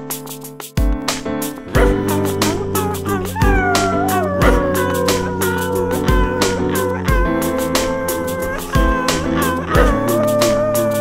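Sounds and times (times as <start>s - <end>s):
music with bass and kick drum: 0.0s - 11.0s
voices howling: 1.7s - 11.0s.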